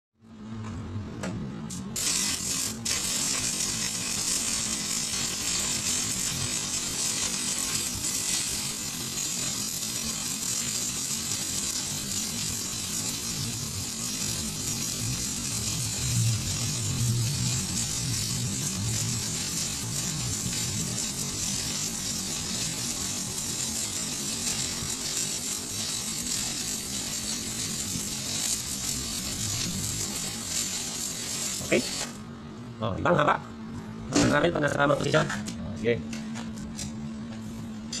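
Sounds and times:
welding arc crackling: 1.7 - 32.4.

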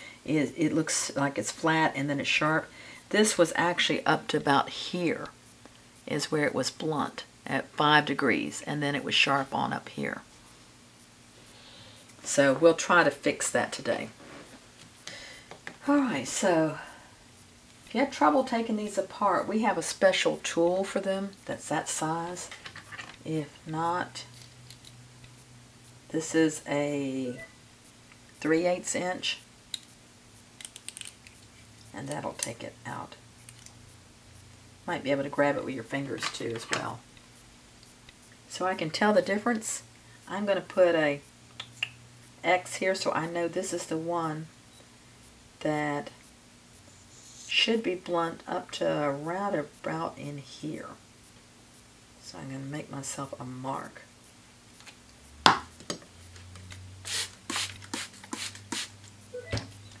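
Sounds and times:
marker scratching on metal: 46.9 - 47.7.

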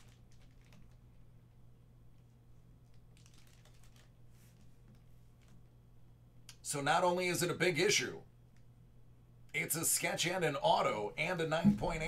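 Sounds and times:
steady low hum: 10.2 - 12.0.

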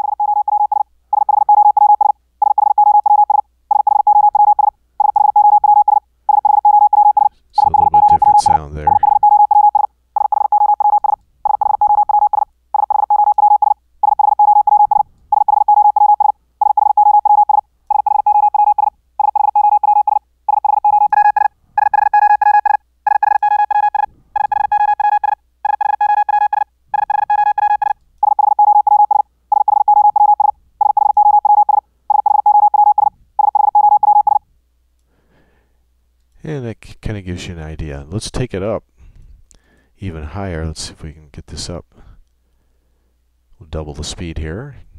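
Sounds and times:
morse code beeps: 0.0 - 34.4.

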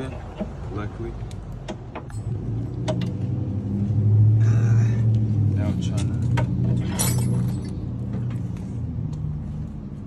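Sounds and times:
motor vehicle engine hum: 0.0 - 10.0.

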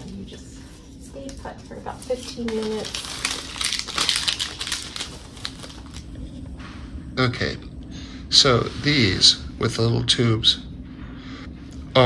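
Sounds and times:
gauze wrapper crinkling and rustling: 1.9 - 6.2.

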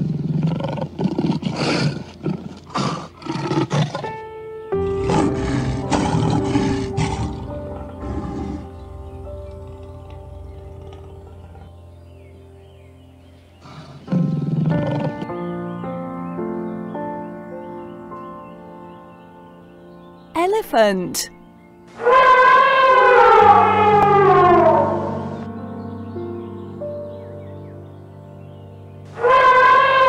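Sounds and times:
lion roaring: 0.0 - 4.2, 4.8 - 11.8, 13.6 - 15.3
background music: 0.0 - 30.0.

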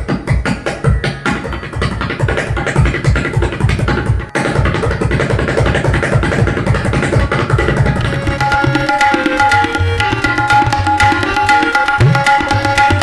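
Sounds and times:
tabla played fast: 0.0 - 13.0.

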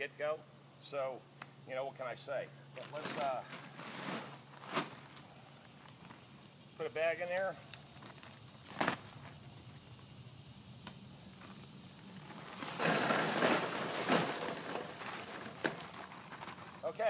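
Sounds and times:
plastic bag handled: 2.8 - 6.2, 12.1 - 17.0
gravelly rattle of rocks poured: 2.8 - 10.2, 11.2 - 17.0.

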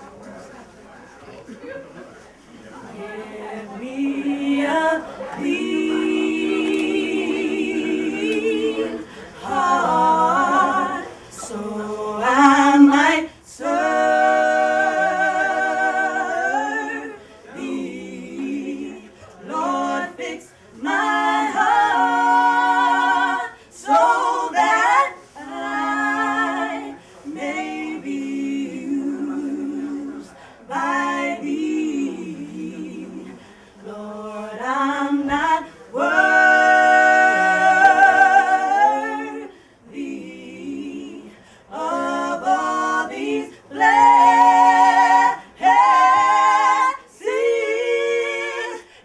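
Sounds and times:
women singing a cappella: 2.8 - 49.0.

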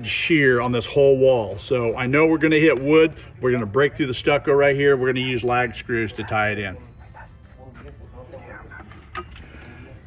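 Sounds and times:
faint background talk: 1.3 - 10.0.

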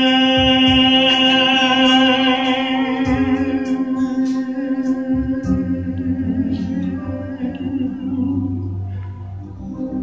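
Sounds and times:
backing music: 0.0 - 10.0.

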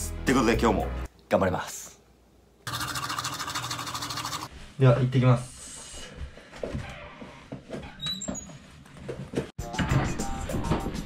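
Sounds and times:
toothbrush scrubbing teeth: 2.7 - 4.5.

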